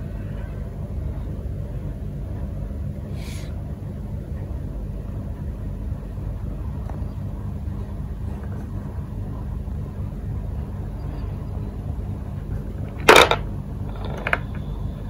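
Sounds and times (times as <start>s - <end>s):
low rumble and hum: 0.0s - 15.0s.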